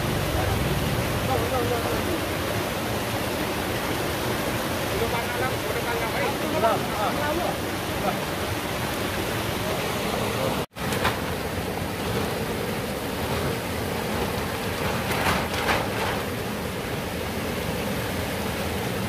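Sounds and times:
stream water rushing over rocks: 0.0s - 19.0s.

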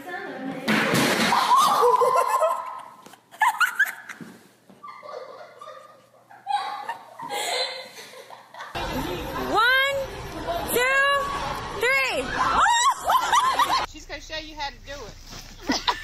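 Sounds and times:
person laughing: 15.6s - 16.0s.

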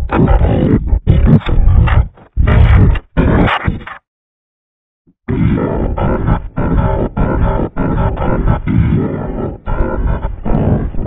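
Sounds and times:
distorted deep stuttering audio: 0.0s - 4.0s, 5.3s - 11.0s.

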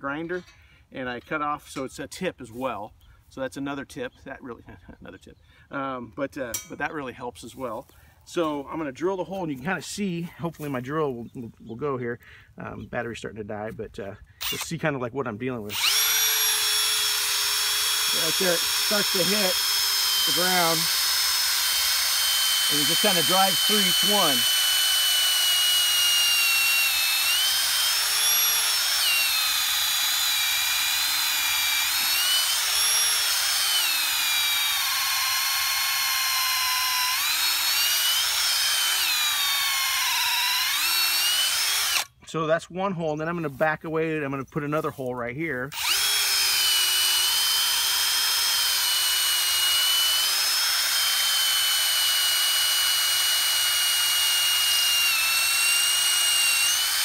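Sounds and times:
cordless drill boring into rock: 14.4s - 14.8s, 15.7s - 42.1s, 45.7s - 57.0s.

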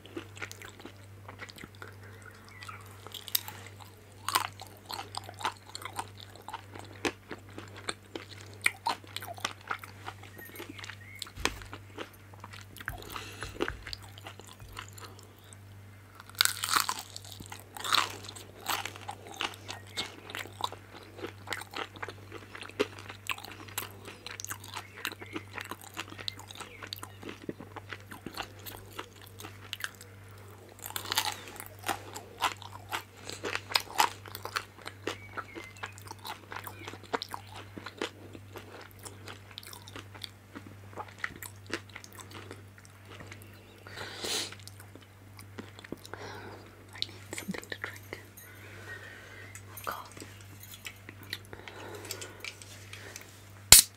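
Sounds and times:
crunchy bites: 0.0s - 15.6s, 16.2s - 30.1s, 30.7s - 43.5s, 50.9s - 53.9s
crunching chews: 0.0s - 53.9s
steady low hum: 0.0s - 53.9s.

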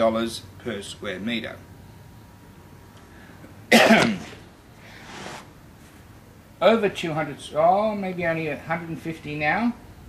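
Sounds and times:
man coughing: 3.7s - 4.4s.

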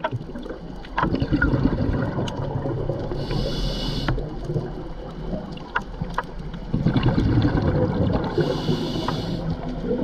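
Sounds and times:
scuba regulator bubbles gurgling: 0.0s - 10.0s
hissing inhalation: 3.2s - 4.3s, 8.3s - 9.6s.

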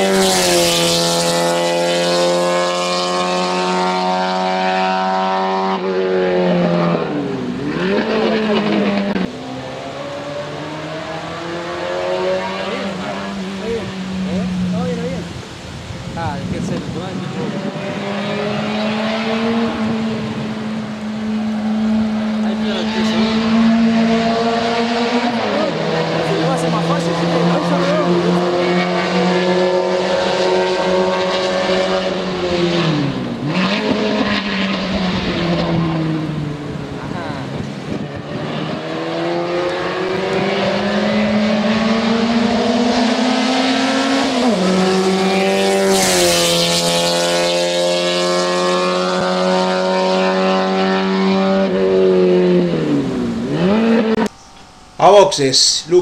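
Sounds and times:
race car engine revving: 0.0s - 56.0s.

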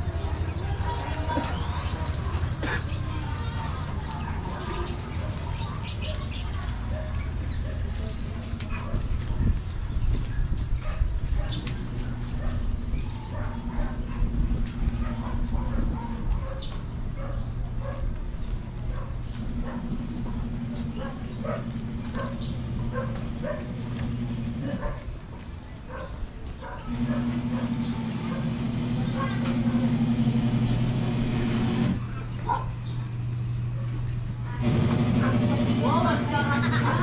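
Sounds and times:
people calling out: 0.0s - 6.9s
low engine hum: 0.0s - 25.9s, 26.6s - 37.0s.

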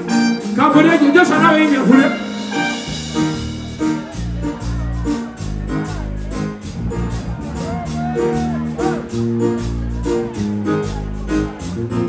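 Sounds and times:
bass guitar: 0.0s - 12.0s
drums keeping steady beat: 0.0s - 12.0s.

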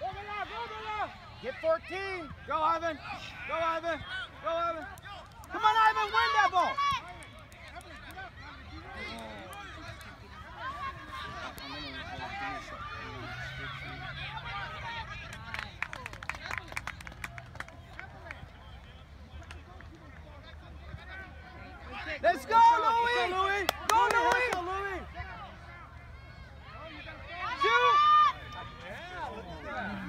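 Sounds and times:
distant shouts and chatter: 0.0s - 30.0s.

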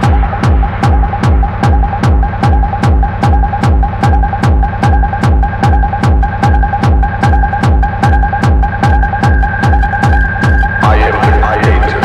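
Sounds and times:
heavy kick drum: 0.0s - 12.0s.

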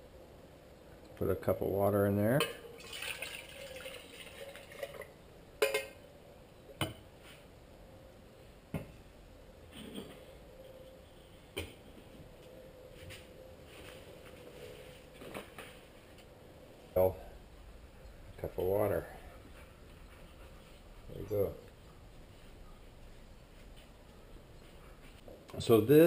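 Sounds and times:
metal pot and lid clinking: 5.6s - 6.0s.

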